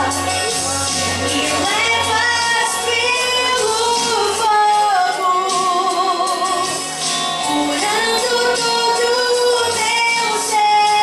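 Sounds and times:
woman singing worship song: 0:00.0 - 0:06.8, 0:07.4 - 0:11.0
instrumental backing: 0:00.0 - 0:11.0.

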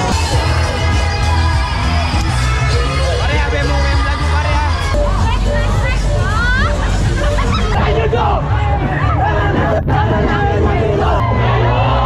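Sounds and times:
crowd babble: 0:00.0 - 0:12.0
music with heavy bass: 0:00.0 - 0:12.0.

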